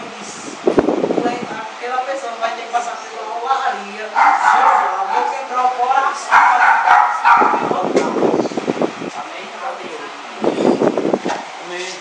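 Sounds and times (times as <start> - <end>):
voices in room: 0.0 - 12.0
dog barking: 4.2 - 5.5, 6.2 - 7.7.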